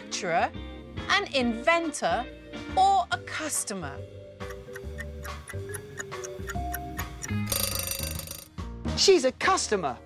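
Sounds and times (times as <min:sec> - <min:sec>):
background music: 0:00.0 - 0:10.0
clock ticking: 0:04.4 - 0:08.4
alarm bell ringing: 0:07.5 - 0:08.5.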